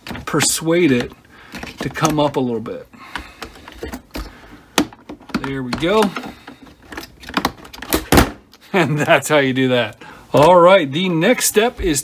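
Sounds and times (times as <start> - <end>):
plastic pry tool clicks and creaks: 3.1 - 8.2.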